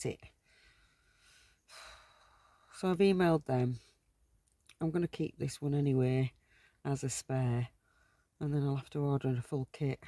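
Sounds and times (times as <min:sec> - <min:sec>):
woman speaking: 0:00.0 - 0:00.3, 0:02.8 - 0:03.9, 0:04.7 - 0:06.3, 0:06.9 - 0:07.7, 0:08.4 - 0:10.0.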